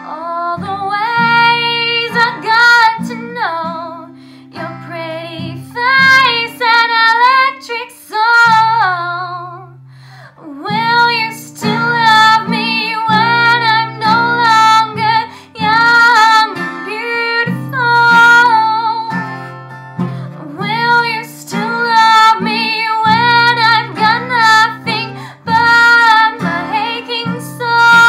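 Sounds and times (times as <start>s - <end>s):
girl singing: 0.0s - 19.4s, 20.2s - 28.0s
acoustic guitar chords: 0.0s - 28.0s.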